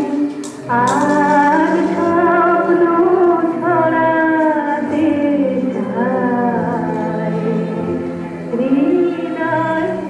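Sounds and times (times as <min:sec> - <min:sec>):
voice singing long gliding notes: 0:00.0 - 0:10.0.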